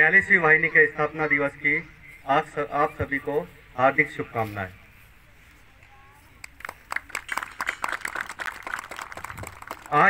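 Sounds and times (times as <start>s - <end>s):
audience applauding: 6.6s - 10.0s.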